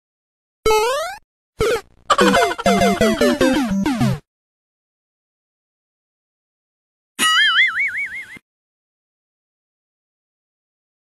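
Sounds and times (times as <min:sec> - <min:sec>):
cartoon boing warbling tone: 0:00.7 - 0:04.2.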